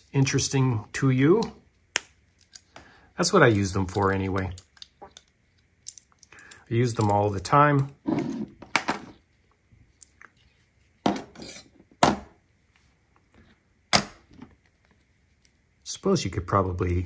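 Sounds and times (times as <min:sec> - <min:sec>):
metallic tool clicks and clinks: 0:05.8 - 0:07.2.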